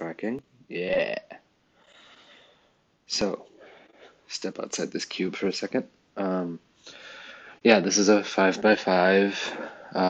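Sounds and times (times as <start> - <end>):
man speaking: 0.0 - 1.4, 3.1 - 6.6, 7.6 - 10.0
faint soft hiss: 0.0 - 10.0.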